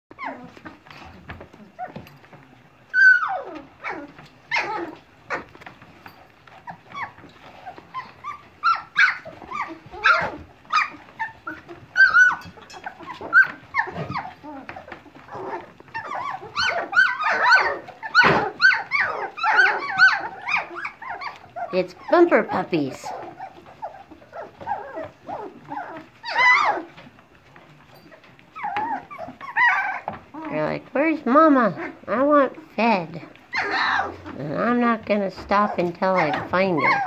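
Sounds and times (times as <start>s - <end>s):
puppies whining and yelping: 0.1s - 37.0s.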